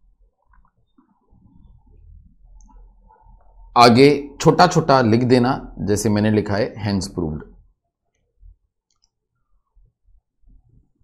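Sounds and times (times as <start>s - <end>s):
faint small clicks: 8.1s - 9.2s.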